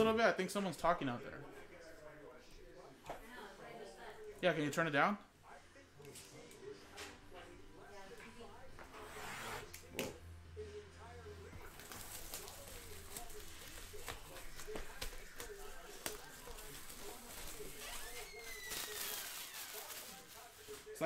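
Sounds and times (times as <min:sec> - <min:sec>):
faint voices: 0:05.2 - 0:21.0
plastic shrink wrap crinkling: 0:11.6 - 0:21.0.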